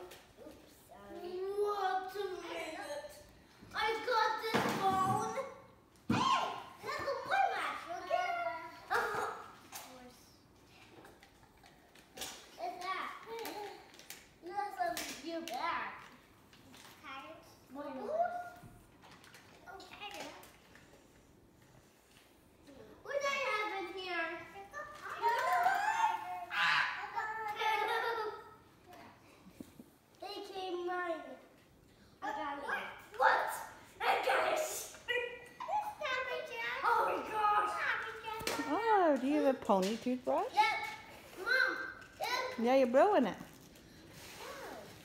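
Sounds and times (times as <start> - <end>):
children squealing and chattering: 24.6 - 28.6.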